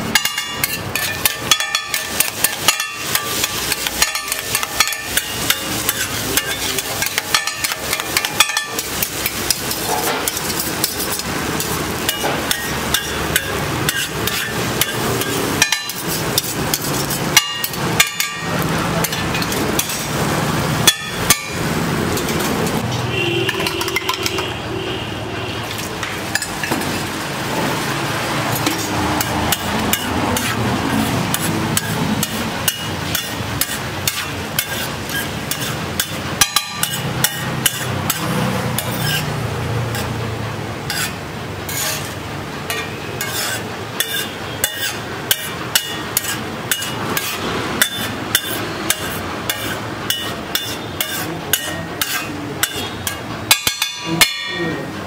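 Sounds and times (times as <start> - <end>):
metal spatula chopping on griddle: 0.0 - 24.6, 25.7 - 54.9.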